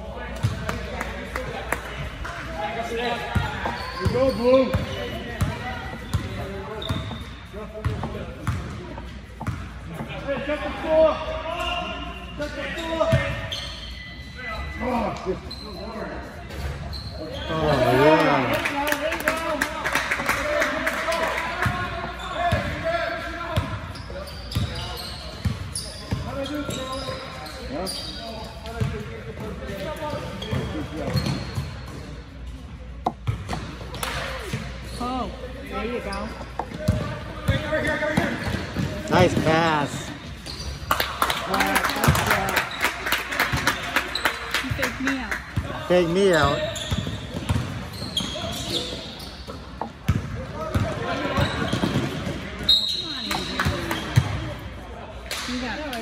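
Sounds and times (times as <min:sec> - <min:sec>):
spectators talking: 0:14.6 - 0:56.0
basketball bouncing on gym floor: 0:46.4 - 0:48.8, 0:49.8 - 0:52.5.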